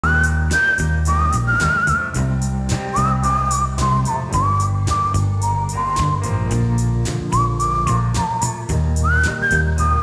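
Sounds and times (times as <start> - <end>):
bass line: 0.0 - 10.0
whistled melody: 0.0 - 10.0.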